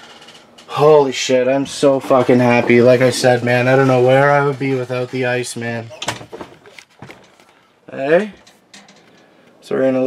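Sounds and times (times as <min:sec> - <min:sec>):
faint clicks and knocks: 0:08.3 - 0:09.6.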